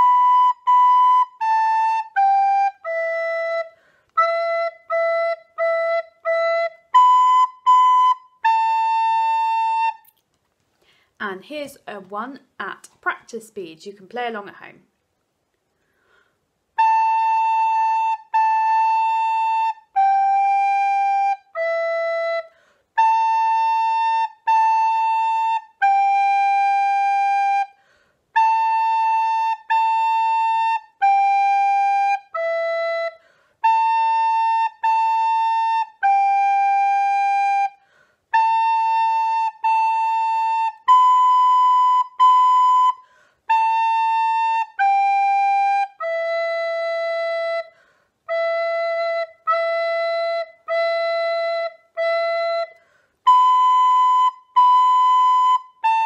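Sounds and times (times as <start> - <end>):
descant recorder playing slow tune: 0.0 - 10.1, 16.8 - 27.8, 28.4 - 56.0.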